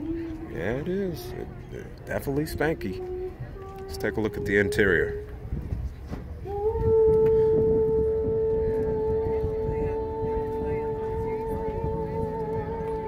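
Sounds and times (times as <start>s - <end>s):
fainter steady notes: 0.0s - 5.7s, 6.4s - 13.0s.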